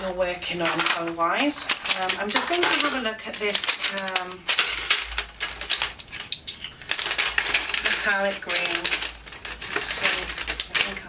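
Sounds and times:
wooden pencils clattering: 0.0 - 11.0.

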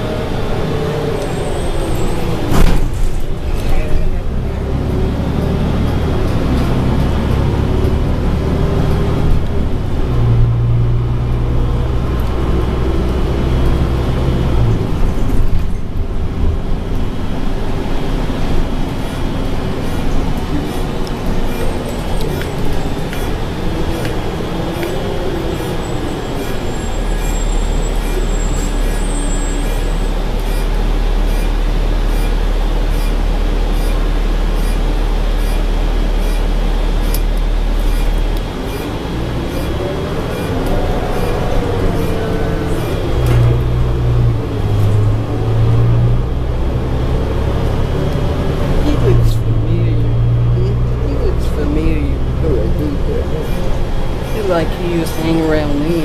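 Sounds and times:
bus engine and road noise: 0.0 - 56.0.

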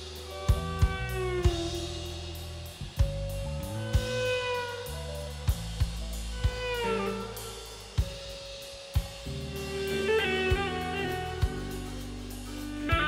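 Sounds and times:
electric guitar lead line: 0.0 - 8.4, 9.0 - 13.0
bass guitar: 0.0 - 13.0
drum kit hits: 0.0 - 13.0.

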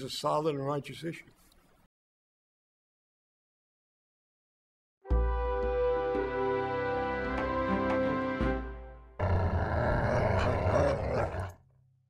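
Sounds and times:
harsh animal growl: 9.2 - 11.6.

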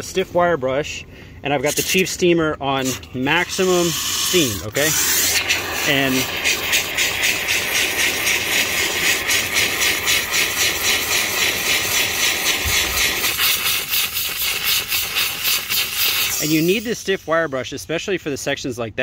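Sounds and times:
steam cleaner hissing: 2.8 - 18.3
wire brush scrubbing carpet: 3.3 - 17.2.

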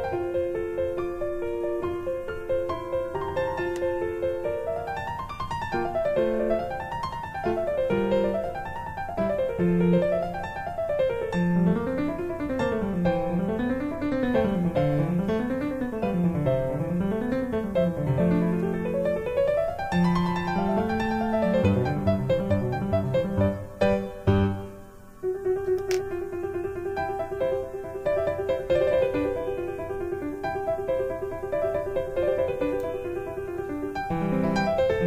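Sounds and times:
piano music with arpeggios: 0.0 - 35.0.

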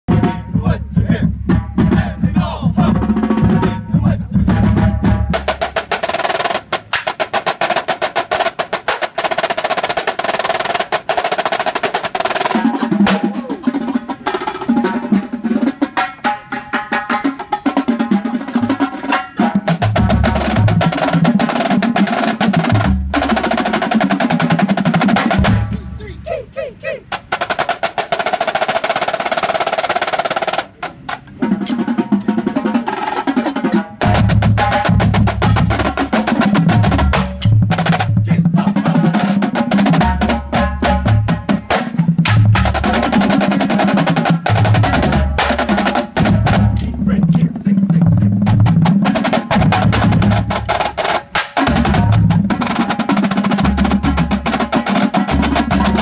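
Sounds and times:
marching snare drums playing: 0.1 - 56.0.

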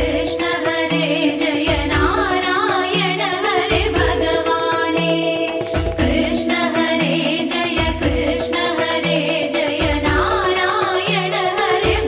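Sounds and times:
steady percussion beat: 0.0 - 12.0.

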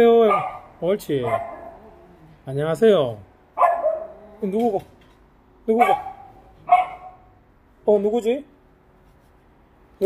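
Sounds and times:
dog barking: 0.2 - 1.9, 3.6 - 4.2, 5.7 - 7.3.

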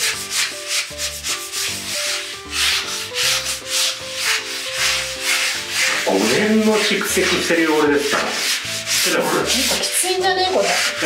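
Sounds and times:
sponge scrubbing glass mirror: 0.0 - 11.0.

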